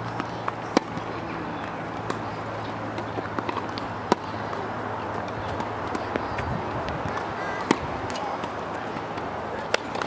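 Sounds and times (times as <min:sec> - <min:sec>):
low outdoor hum: 0:00.0 - 0:10.0
tennis ball bouncing: 0:00.0 - 0:10.0
tennis racket hitting ball: 0:00.1 - 0:06.4, 0:07.0 - 0:10.0.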